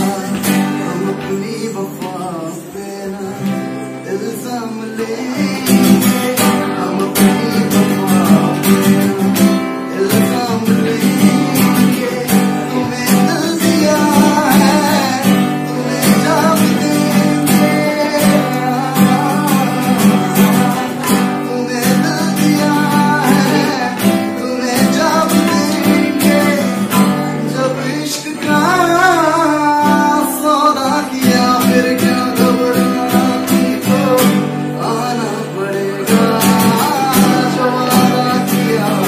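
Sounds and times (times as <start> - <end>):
acoustic guitar strumming: 0.0 - 39.0
man singing: 0.0 - 39.0.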